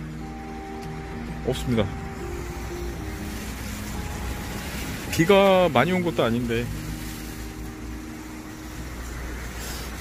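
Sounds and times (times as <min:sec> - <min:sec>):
low traffic rumble: 0:00.0 - 0:10.0
vehicle engine hum: 0:00.0 - 0:10.0.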